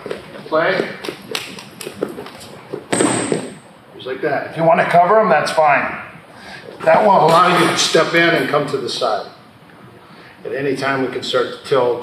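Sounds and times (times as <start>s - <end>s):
body hitting foam mat: 2.8s - 3.6s.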